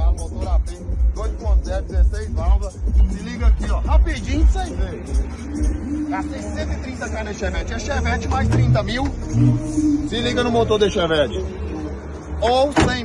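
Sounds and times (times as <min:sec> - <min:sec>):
man talking: 0:00.0 - 0:05.3, 0:06.0 - 0:13.0
music with pulsing bass beat: 0:00.0 - 0:12.3.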